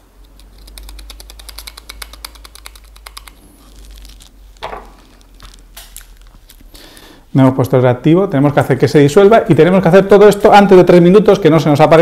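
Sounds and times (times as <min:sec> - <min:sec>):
powder ticking into glass vial: 0:00.2 - 0:03.3
paper rustle: 0:01.4 - 0:06.7.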